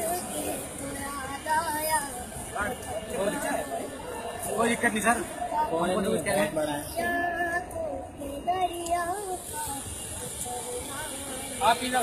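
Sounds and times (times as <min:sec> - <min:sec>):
child singing: 0:00.0 - 0:02.4, 0:06.8 - 0:11.5.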